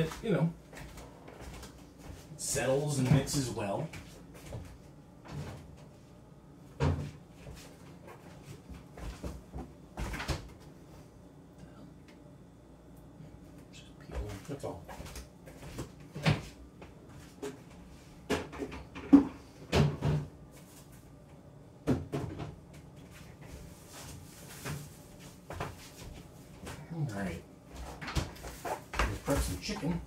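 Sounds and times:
kitchen items knocking and clunking: 0:18.2 - 0:20.3, 0:21.8 - 0:22.6.

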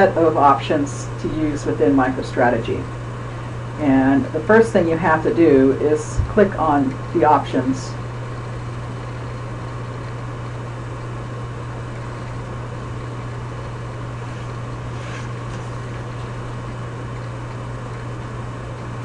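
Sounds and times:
low hum: 0:00.3 - 0:19.0.

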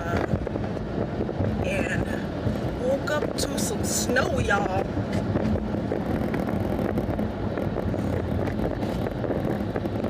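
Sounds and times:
car cabin road rumble: 0:00.0 - 0:10.0.

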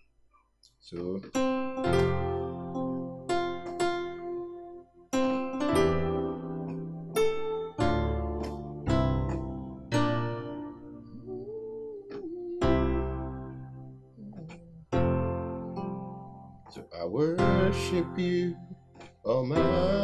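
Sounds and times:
piano chords: 0:01.0 - 0:20.0.

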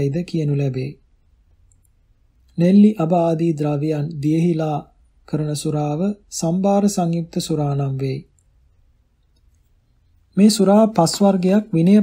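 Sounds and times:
person reading aloud: 0:00.0 - 0:01.1, 0:02.5 - 0:08.3, 0:10.3 - 0:12.0.

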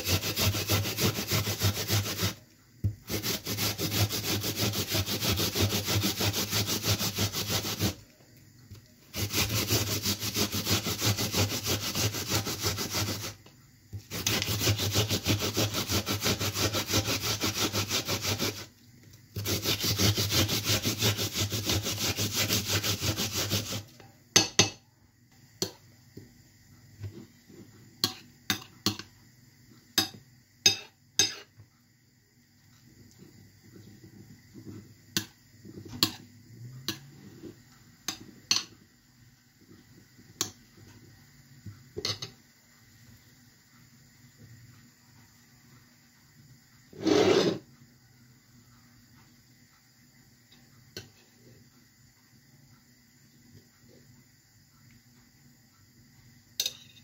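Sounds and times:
onion rasping on a grater: 0:00.0 - 0:02.4, 0:03.1 - 0:08.0, 0:09.1 - 0:13.4, 0:14.1 - 0:18.7, 0:19.3 - 0:23.9, 0:47.0 - 0:47.6.

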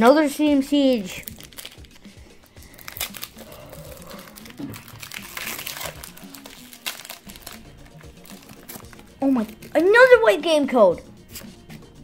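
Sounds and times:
foil wrapper crinkling and tearing: 0:00.9 - 0:09.9.

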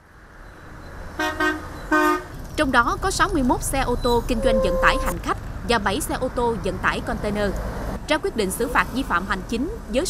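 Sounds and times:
road traffic rumble: 0:00.0 - 0:10.0
vehicle horn toots: 0:01.2 - 0:02.3, 0:04.3 - 0:05.2.

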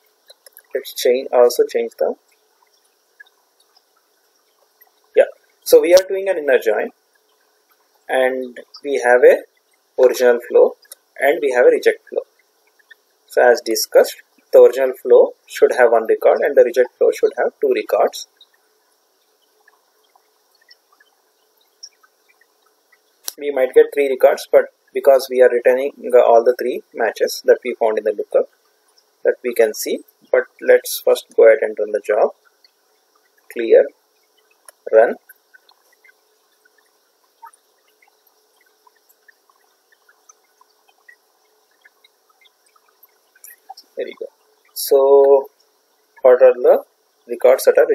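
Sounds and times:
tiny ticks: 0:00.0 - 0:00.9, 0:01.9 - 0:06.1, 0:10.8 - 0:11.2, 0:12.0 - 0:13.3, 0:18.0 - 0:23.4, 0:27.7 - 0:29.2, 0:32.2 - 0:47.6
low steady hum: 0:00.0 - 0:47.9
microphone hiss: 0:00.0 - 0:47.9.

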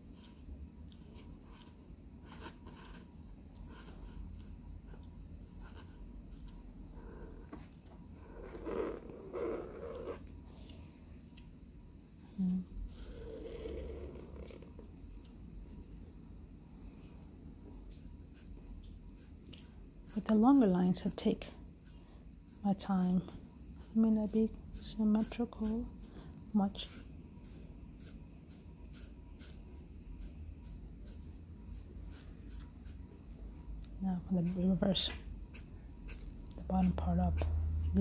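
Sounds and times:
faint low hum: 0:00.0 - 0:38.0
marker scratching across paper: 0:08.4 - 0:10.2, 0:26.8 - 0:29.6, 0:30.2 - 0:33.0, 0:34.4 - 0:37.5.

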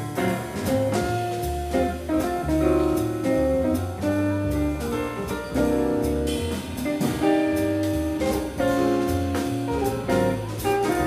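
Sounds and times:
double bass: 0:00.0 - 0:11.0
drum kit with cymbals: 0:00.0 - 0:11.0.

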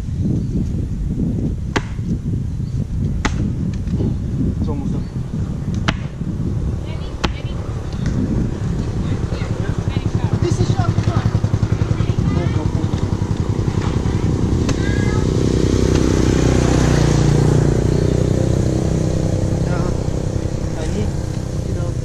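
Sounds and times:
steady low rumble: 0:00.0 - 0:22.0
coconut knocking against rock: 0:01.7 - 0:02.0, 0:03.2 - 0:04.0, 0:05.8 - 0:06.2.

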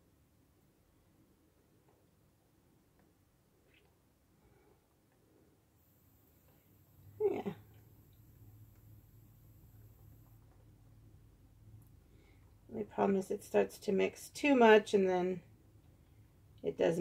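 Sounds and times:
faint low hum: 0:00.0 - 0:17.0.

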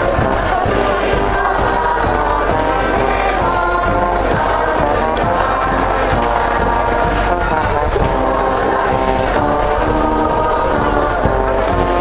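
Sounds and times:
band accompaniment: 0:00.0 - 0:12.0
crowd singing in unison: 0:00.0 - 0:12.0
stadium crowd noise: 0:00.0 - 0:12.0.

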